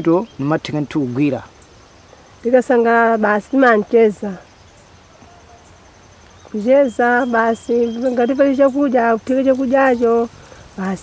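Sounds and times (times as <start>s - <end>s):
faint insect chirping: 0.0s - 11.0s
woman speaking: 2.4s - 4.5s, 6.5s - 11.0s.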